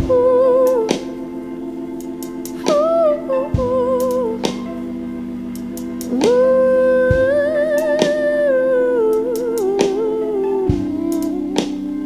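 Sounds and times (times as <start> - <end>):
sustained keyboard chord: 0.0 - 12.0.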